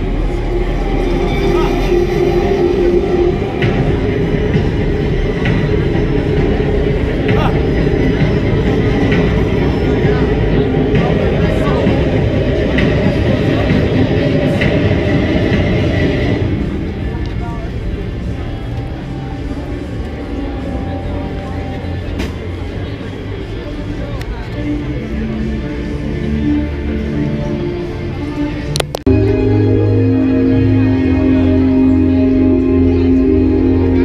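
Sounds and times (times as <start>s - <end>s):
heavy low rumble: 0.0s - 34.0s
soundtrack music over loudspeakers: 0.0s - 34.0s
voices: 0.0s - 34.0s.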